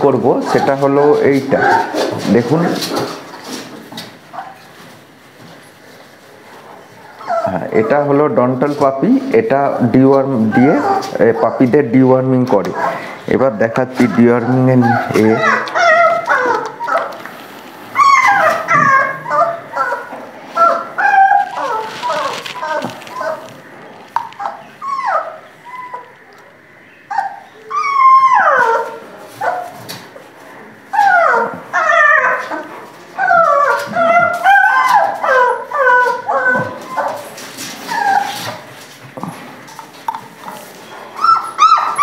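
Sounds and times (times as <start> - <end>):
puppies whimpering and yelping: 0.2 - 3.7, 7.0 - 8.2, 9.7 - 11.8, 13.8 - 17.2, 17.9 - 26.3, 27.0 - 29.8, 30.9 - 38.7, 40.8 - 42.0.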